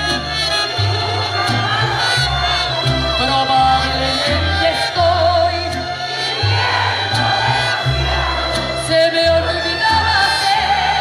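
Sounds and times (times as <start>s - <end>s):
deep bass notes: 0.0s - 11.0s
violins playing melody: 0.0s - 11.0s
audience cheering: 6.2s - 8.8s.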